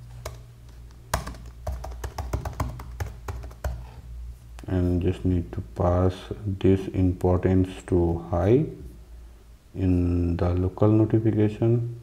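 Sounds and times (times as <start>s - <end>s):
typing on keyboard: 1.1s - 3.9s.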